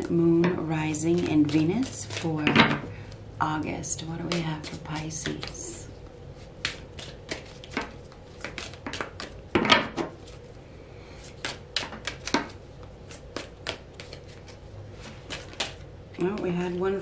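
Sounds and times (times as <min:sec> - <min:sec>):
cards being shuffled: 0:00.9 - 0:03.2, 0:04.2 - 0:10.5, 0:11.2 - 0:16.4.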